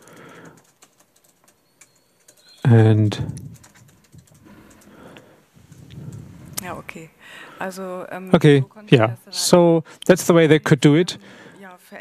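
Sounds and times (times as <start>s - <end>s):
faint clicks: 3.3s - 6.7s.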